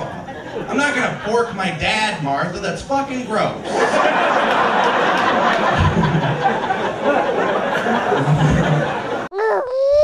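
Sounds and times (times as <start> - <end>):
audience laughing: 0.0 - 1.8, 3.6 - 9.3
wavering pitched cry sound effect: 9.3 - 10.0.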